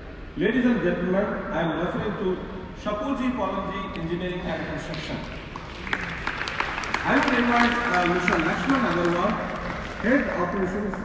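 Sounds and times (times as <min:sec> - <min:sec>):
audience applause: 0:04.8 - 0:11.0.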